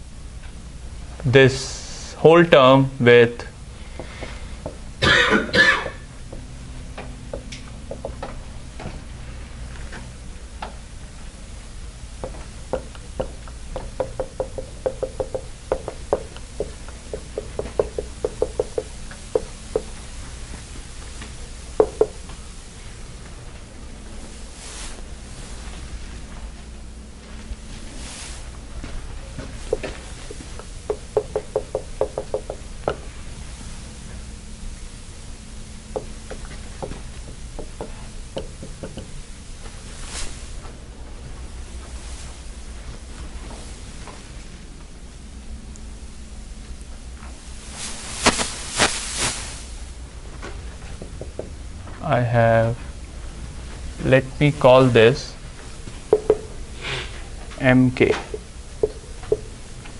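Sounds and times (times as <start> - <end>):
person coughing: 5.0 - 6.1
marker tapping on whiteboard: 7.3 - 8.3, 12.2 - 20.0, 21.8 - 22.2, 29.7 - 33.0, 36.0 - 39.1, 56.1 - 56.5, 58.2 - 59.5.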